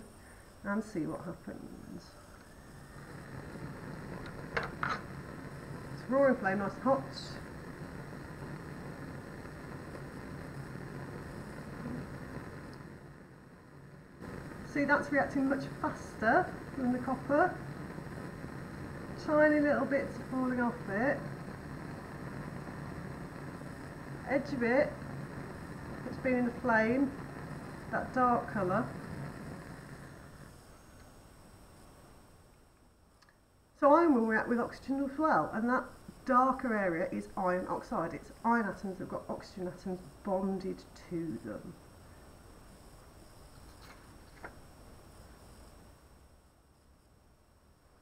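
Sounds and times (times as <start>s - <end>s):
bunsen burner flame roaring: 0.0s - 48.0s.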